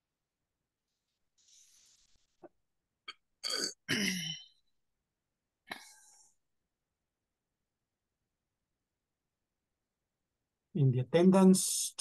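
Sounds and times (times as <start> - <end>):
man clearing his throat: 3.4 - 4.5.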